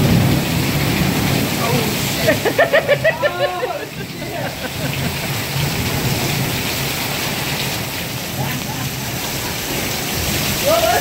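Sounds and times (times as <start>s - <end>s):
heavy rain pouring: 0.0s - 11.0s.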